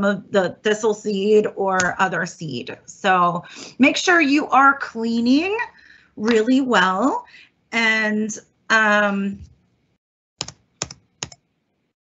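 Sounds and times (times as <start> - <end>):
computer keys clicking: 10.4 - 11.4.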